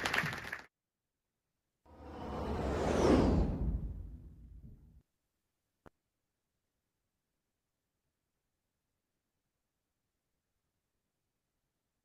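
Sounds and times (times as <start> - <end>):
applause: 0.0 - 0.7.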